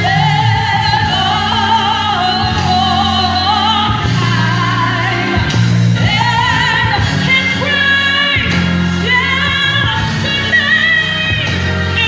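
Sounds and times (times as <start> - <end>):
woman singing with vibrato: 0.0 - 12.0.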